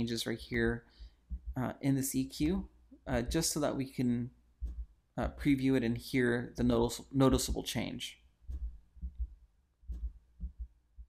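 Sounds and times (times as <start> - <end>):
dull low thumps: 1.0 - 3.8, 4.5 - 5.4, 8.4 - 11.0.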